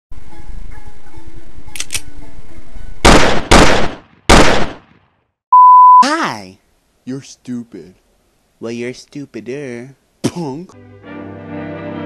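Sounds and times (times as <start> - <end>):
loud blasts: 3.0 - 4.9
high censor beep: 5.5 - 6.1
video game music from tv: 10.8 - 12.0.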